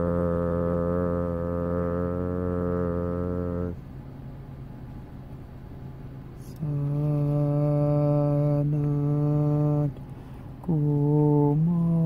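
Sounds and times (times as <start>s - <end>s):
low voice chanting a drone: 0.0s - 3.8s, 6.4s - 10.0s, 10.6s - 12.0s.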